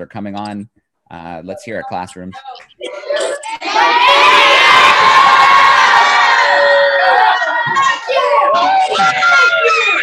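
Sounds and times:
children cheering and shouting: 0:02.9 - 0:10.0.

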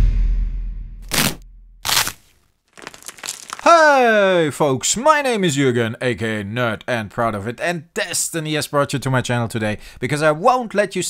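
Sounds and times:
sound effect hit: 0:00.0 - 0:01.4.

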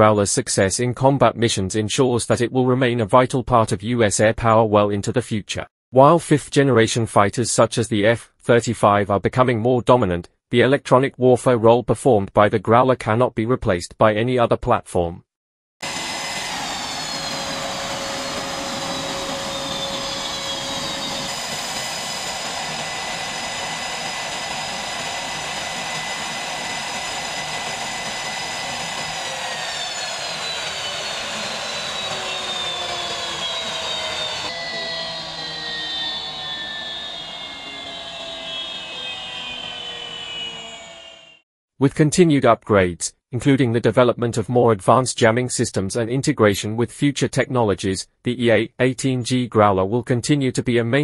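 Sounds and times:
jet engines running with turbine whine: 0:15.8 - 0:41.4.

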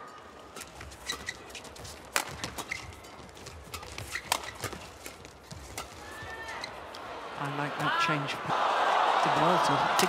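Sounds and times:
shoes squeaking on court: 0:00.5 - 0:07.0
racket striking shuttlecock: 0:00.6 - 0:06.1.

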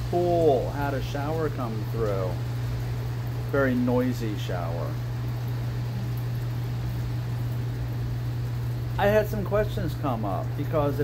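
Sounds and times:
even hiss: 0:00.0 - 0:11.0
low mechanical hum: 0:00.0 - 0:11.0.

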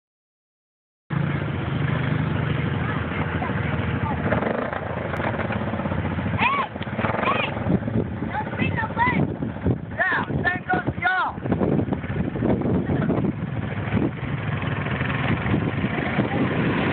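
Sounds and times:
quad bike engine driving off: 0:01.1 - 0:10.0, 0:11.4 - 0:16.9.

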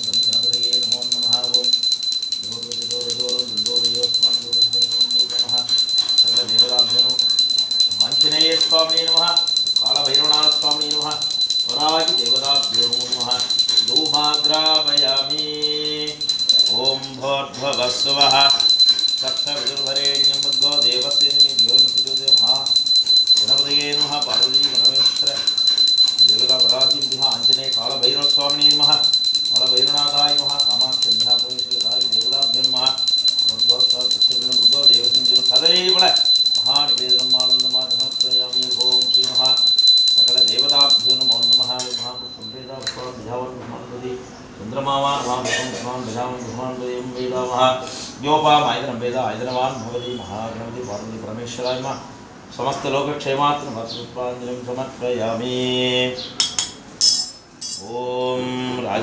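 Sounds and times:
small hand bell ringing: 0:00.0 - 0:43.2.

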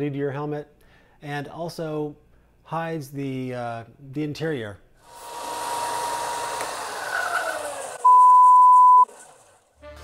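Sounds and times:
disc sander sanding foam: 0:05.1 - 0:08.0
loud steady beep: 0:08.0 - 0:09.1.

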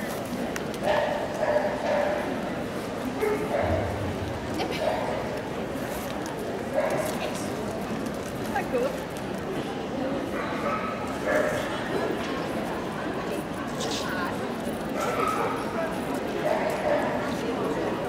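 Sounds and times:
murmur of crowd chatter: 0:00.0 - 0:18.0.

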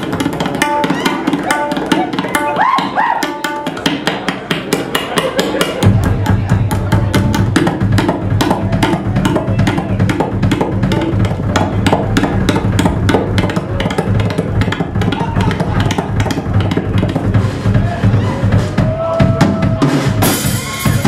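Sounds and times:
drum kit solo: 0:00.0 - 0:04.3, 0:05.7 - 0:21.0.

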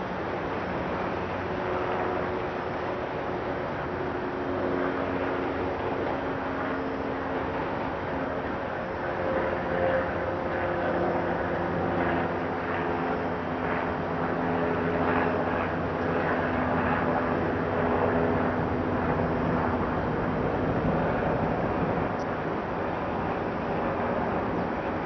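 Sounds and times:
outdoor city noise: 0:00.0 - 0:25.0
steady engine drone: 0:00.0 - 0:25.0.

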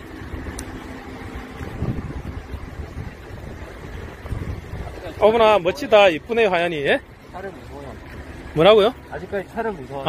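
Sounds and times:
wind buffeting microphone: 0:00.0 - 0:06.4.

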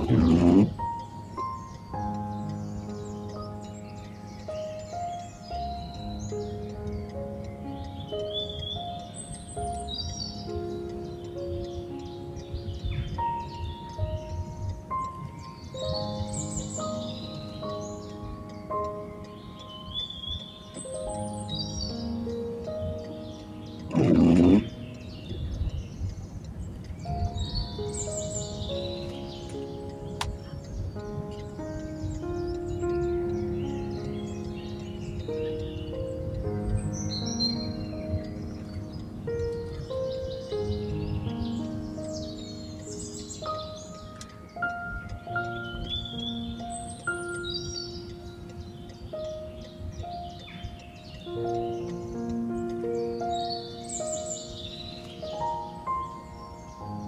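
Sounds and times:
background music: 0:00.0 - 0:57.0
birds chirping: 0:00.0 - 0:57.0.

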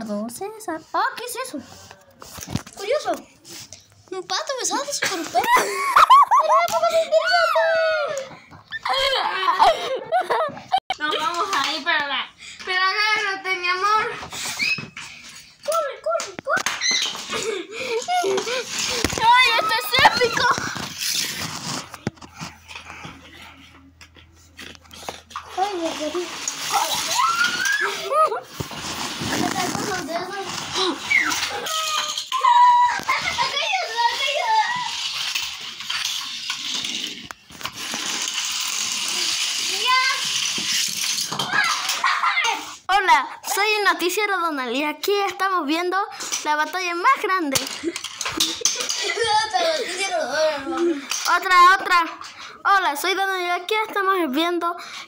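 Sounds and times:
excited children's voices: 0:02.7 - 0:21.0, 0:25.4 - 0:28.6, 0:29.2 - 0:36.0, 0:38.9 - 0:55.0.

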